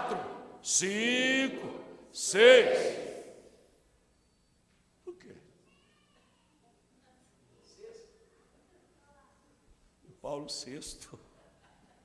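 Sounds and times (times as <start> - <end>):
faint high-pitched cry: 5.6 - 6.8.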